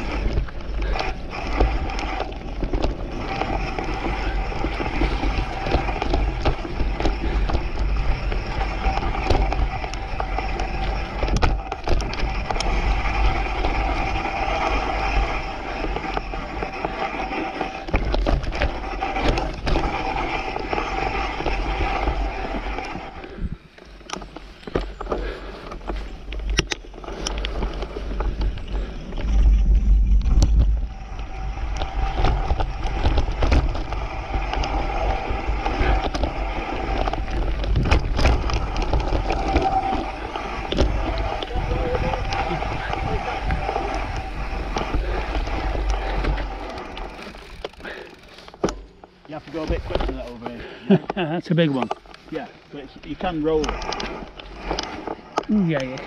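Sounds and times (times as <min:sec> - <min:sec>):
wind rumbling on microphone: 0:00.0 - 0:48.3
bike rattling over bumps: 0:00.0 - 0:56.0
bike tyres on dirt trail: 0:00.0 - 0:56.0.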